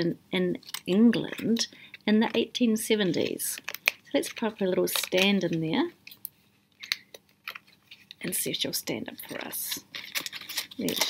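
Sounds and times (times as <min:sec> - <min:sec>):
paper and card crinkling: 0:00.7 - 0:06.2, 0:06.8 - 0:11.0.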